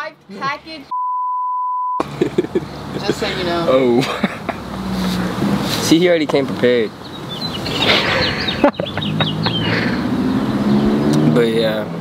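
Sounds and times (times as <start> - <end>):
censor bleep: 0.9 - 2.0
laughter: 2.0 - 3.3, 4.0 - 4.6, 7.7 - 10.0.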